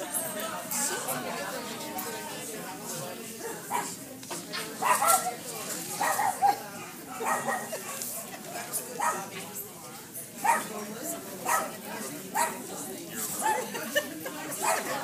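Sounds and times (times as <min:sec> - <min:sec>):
crowd chatter: 0:00.0 - 0:15.0
small dog barking: 0:04.8 - 0:05.3, 0:06.0 - 0:06.6, 0:07.2 - 0:07.8, 0:09.0 - 0:09.3, 0:10.4 - 0:10.7, 0:11.5 - 0:11.8, 0:12.4 - 0:12.6.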